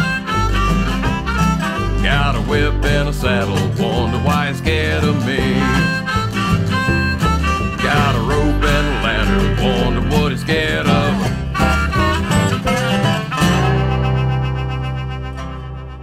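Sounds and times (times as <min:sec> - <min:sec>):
country band playing: 0:00.0 - 0:16.0
harmonica: 0:00.0 - 0:16.0.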